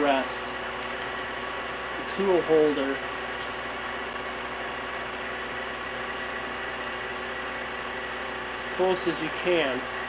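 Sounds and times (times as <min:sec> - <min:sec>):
lathe motor and gear hum: 0:00.0 - 0:10.0.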